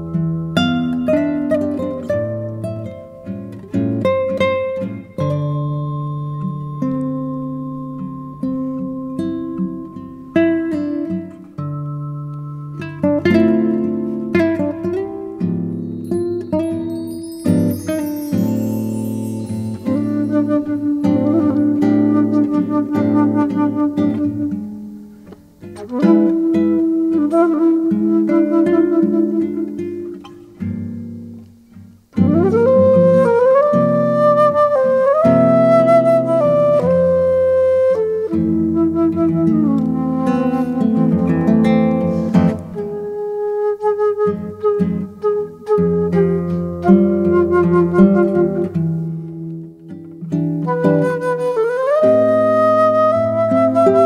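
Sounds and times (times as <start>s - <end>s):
classical guitar playing: 0.0s - 54.0s.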